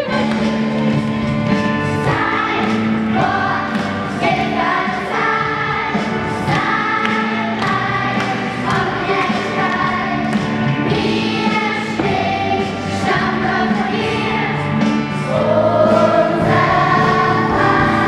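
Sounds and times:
children's gospel choir singing: 0:00.0 - 0:18.0.

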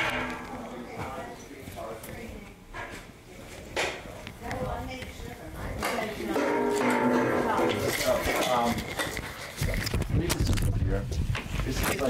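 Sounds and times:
footsteps: 0:00.0 - 0:10.2
indistinct talk of people: 0:00.0 - 0:12.0.

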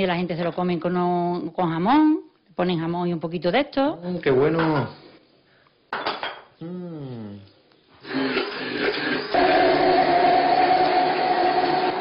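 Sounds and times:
person saying ah: 0:06.6 - 0:07.6
electric blender whirring: 0:08.0 - 0:12.0.

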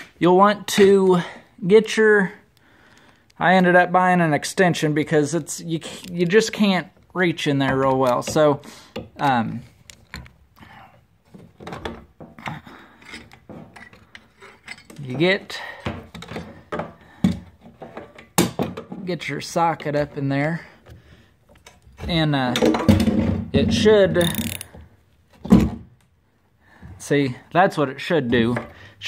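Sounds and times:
metal socket scraping and clicking: 0:13.0 - 0:15.0, 0:24.2 - 0:24.8.

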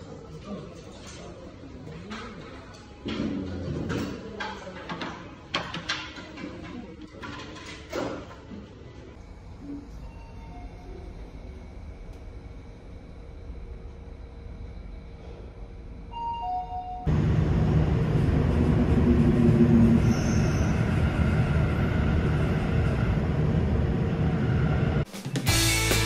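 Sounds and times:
subway train rumbling: 0:09.1 - 0:25.1.

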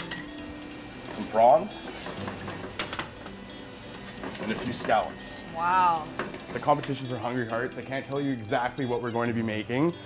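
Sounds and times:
hot pot simmering in a pan: 0:00.0 - 0:10.0.

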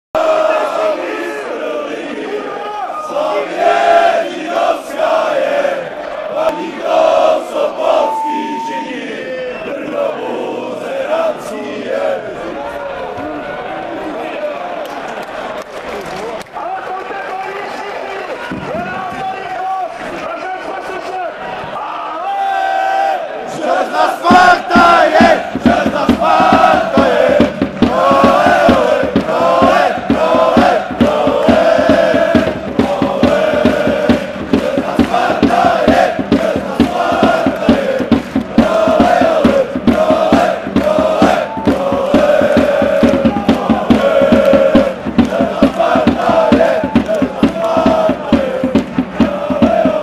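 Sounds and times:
crowd chanting: 0:00.1 - 0:15.6, 0:20.8 - 0:50.0.

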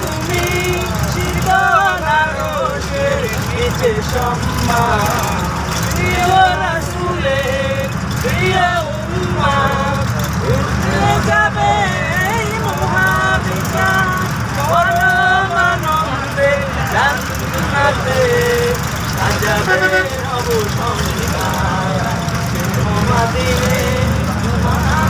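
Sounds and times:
bus engine rumble: 0:00.0 - 0:25.0
road noise: 0:00.0 - 0:25.0
voices singing: 0:00.0 - 0:25.0.

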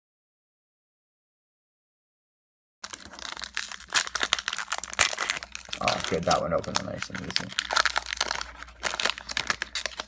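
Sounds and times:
foil wrapper tearing and crinkling: 0:02.8 - 0:10.0.

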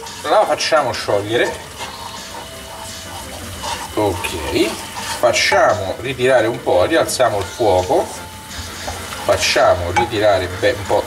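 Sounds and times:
food sizzling in a frying pan: 0:00.0 - 0:11.0
wooden spoon stirring: 0:00.0 - 0:11.0.

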